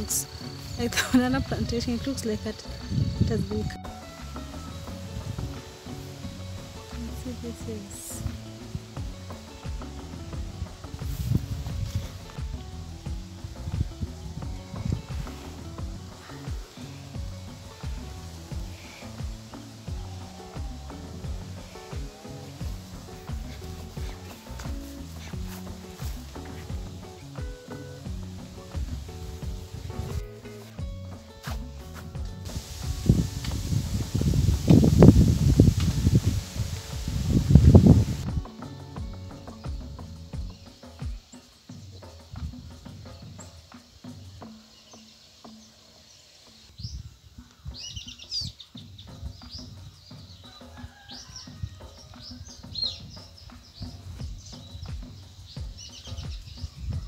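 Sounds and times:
background music: 0.0 - 57.0
birds chirping: 0.0 - 57.0.

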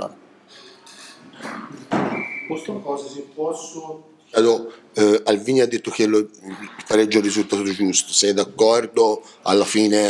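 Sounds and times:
indistinct voices: 5.9 - 8.6.

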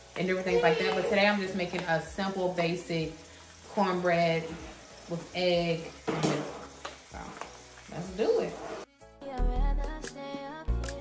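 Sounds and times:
woman speaking: 0.2 - 3.1, 7.1 - 8.6.

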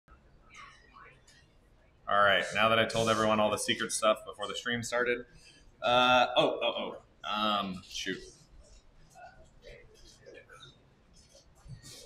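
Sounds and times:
person whispering: 2.1 - 3.5.

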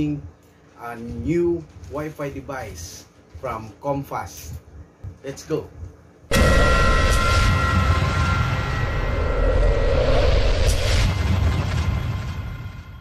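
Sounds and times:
deep rushing sound effect: 6.3 - 13.0.

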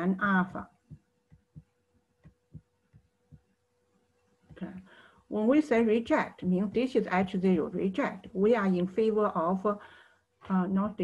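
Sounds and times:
faint steady hum: 0.0 - 11.0
stylus tapping on tablet screen: 0.6 - 3.6, 6.0 - 7.5.

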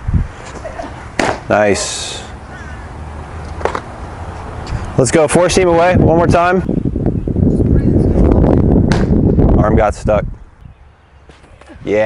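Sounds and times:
wind buffeting microphone: 0.0 - 0.8, 4.2 - 12.0
baseball popping into mitt: 1.2 - 1.5, 8.9 - 9.2.

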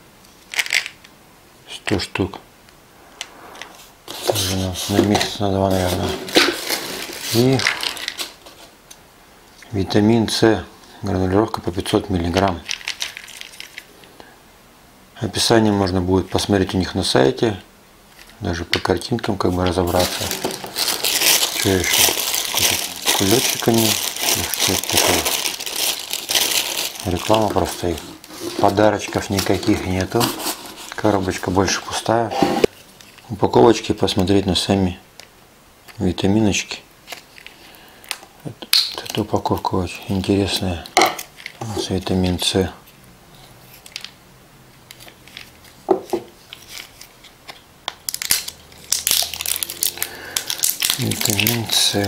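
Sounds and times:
plastic bag crinkling: 4.1 - 8.8, 12.3 - 14.0, 19.4 - 31.8, 44.9 - 52.0.

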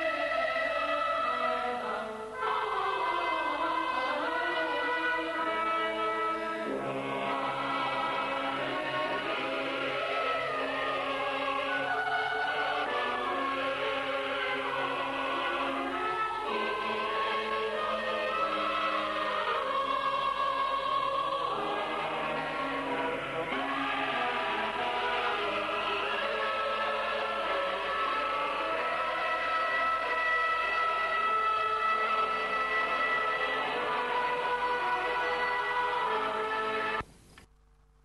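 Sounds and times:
choir singing held chords: 0.0 - 37.0.

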